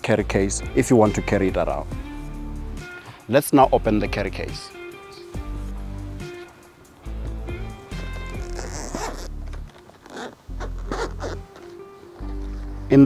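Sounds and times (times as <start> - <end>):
background music: 0.0 - 13.0
zipper pulled open: 7.9 - 11.8.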